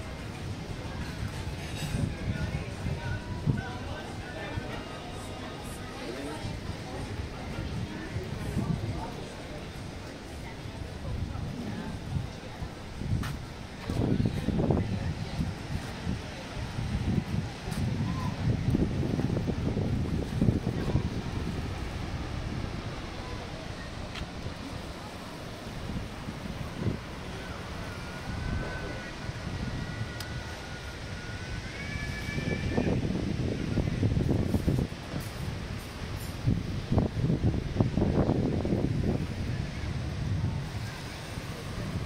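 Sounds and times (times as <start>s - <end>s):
people talking nearby: 0.0s - 42.0s
wind rumble on microphone: 0.0s - 42.0s.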